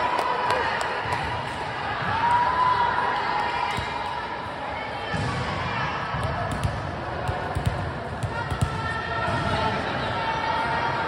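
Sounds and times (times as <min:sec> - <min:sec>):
volleyballs bouncing on gym floor: 0:05.1 - 0:09.8.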